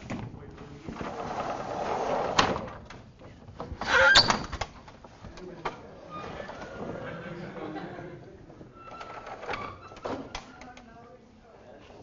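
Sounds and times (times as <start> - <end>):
panel squeaking and scraping: 3.8 - 4.6, 8.8 - 10.7.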